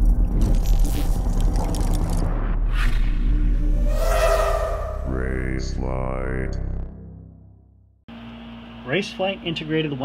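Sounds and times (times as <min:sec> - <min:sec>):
deep low drone: 0:01.7 - 0:08.0
whooshing noise: 0:03.5 - 0:05.8.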